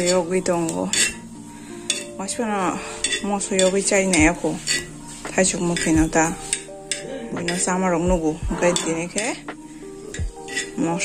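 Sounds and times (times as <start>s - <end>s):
knife scraping on iron pan: 0.0s - 2.2s, 2.8s - 7.8s, 8.6s - 11.0s
person speaking: 7.1s - 9.5s.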